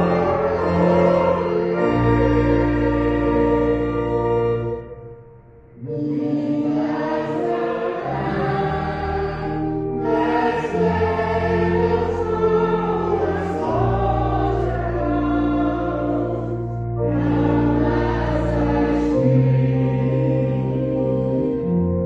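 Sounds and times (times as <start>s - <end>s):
voices singing a hymn: 0.0s - 5.0s, 5.7s - 22.0s
sustained chords and bass notes: 0.0s - 22.0s.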